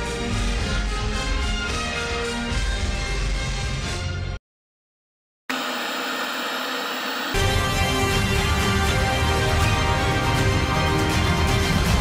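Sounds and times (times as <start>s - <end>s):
film music with heavy bass: 0.0s - 4.4s, 7.4s - 12.0s.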